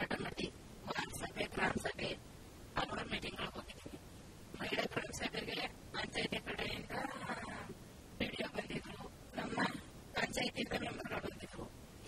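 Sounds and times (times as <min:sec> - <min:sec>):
person speaking: 0:00.0 - 0:02.2, 0:02.8 - 0:11.7.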